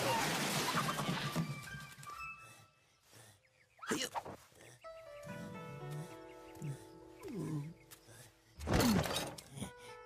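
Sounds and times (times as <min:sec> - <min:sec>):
background music: 0:04.7 - 0:10.0.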